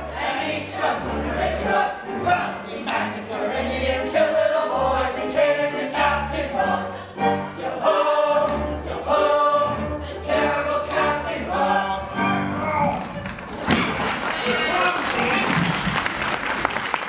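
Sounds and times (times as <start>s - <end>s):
chorus singing: 0.0s - 13.1s
instrumental accompaniment: 0.0s - 14.2s.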